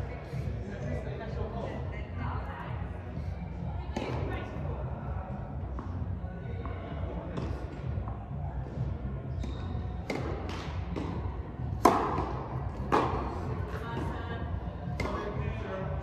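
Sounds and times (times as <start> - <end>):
tennis balls bouncing: 8.8 - 14.2, 14.8 - 15.4
tennis balls struck by rackets: 9.3 - 14.2, 14.8 - 15.4.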